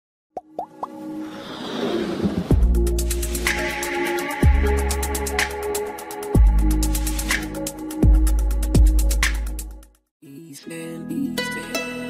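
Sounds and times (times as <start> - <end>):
electronic build-up music: 0.6 - 9.6.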